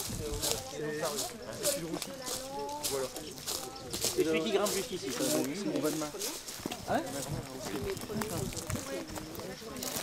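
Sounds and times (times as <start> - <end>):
distant voices talking: 0.0 - 10.0.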